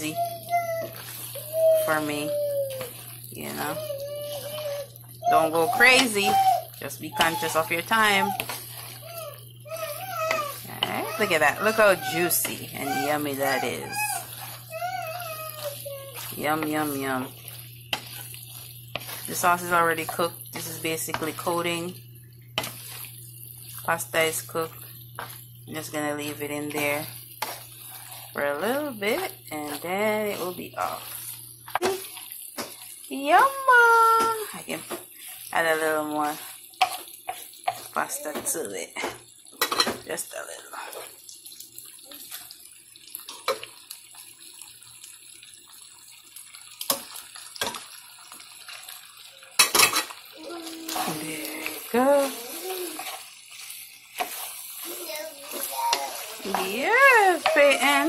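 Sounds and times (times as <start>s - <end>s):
pasta squelching in sauce: 0.2s - 22.0s, 22.6s - 33.0s, 50.2s - 58.0s.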